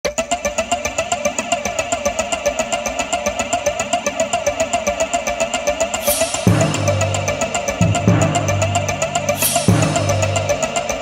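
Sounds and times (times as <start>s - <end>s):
engine running with rapid pulsing: 0.0s - 11.0s.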